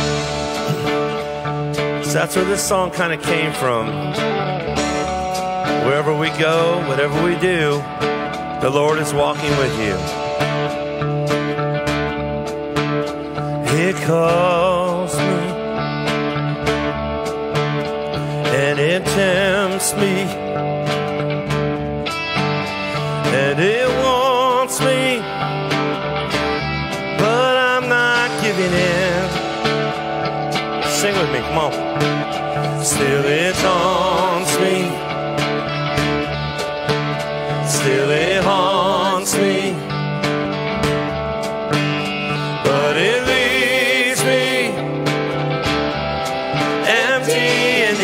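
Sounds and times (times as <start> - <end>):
person singing with vibrato: 0.0 - 1.5, 13.6 - 15.8, 18.3 - 20.5, 23.0 - 25.6, 27.2 - 30.0, 32.6 - 35.5, 37.4 - 40.2, 42.3 - 45.2, 46.4 - 48.0
band playing electric guitars: 0.0 - 48.0.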